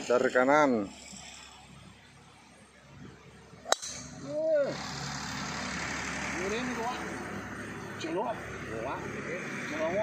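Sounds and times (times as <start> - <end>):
golf driver striking ball: 3.7 - 4.2.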